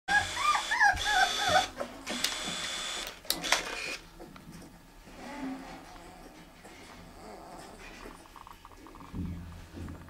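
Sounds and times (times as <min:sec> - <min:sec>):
puppy whimpering: 0:00.1 - 0:02.1, 0:05.1 - 0:09.1.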